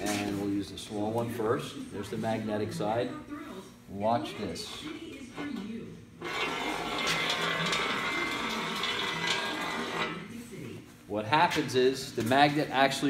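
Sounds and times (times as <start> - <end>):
magnet scraping down metal plate: 6.2 - 10.2.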